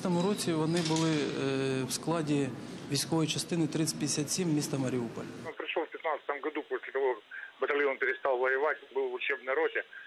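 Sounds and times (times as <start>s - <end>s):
man speaking over telephone: 5.5s - 10.0s.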